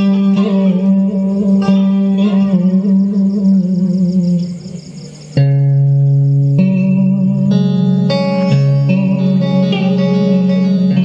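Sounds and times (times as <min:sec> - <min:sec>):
held instrumental note wavering: 0:00.0 - 0:11.0.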